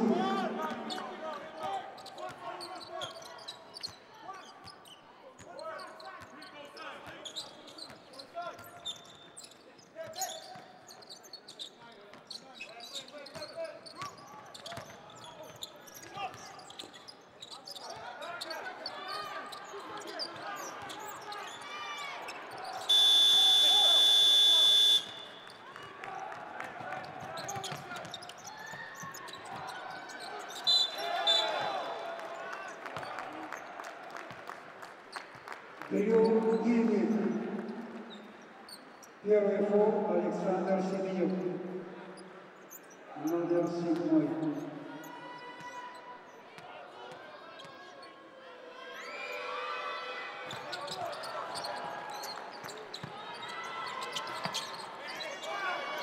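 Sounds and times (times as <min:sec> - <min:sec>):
arena noise: 0:00.0 - 0:56.0
arena buzzer: 0:22.9 - 0:25.4.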